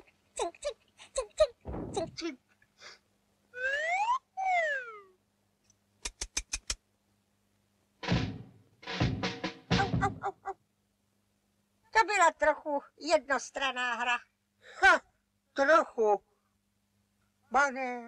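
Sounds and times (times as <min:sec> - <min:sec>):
cartoon squeal gliding: 0:03.6 - 0:05.2
quick run of clicks: 0:06.0 - 0:06.8.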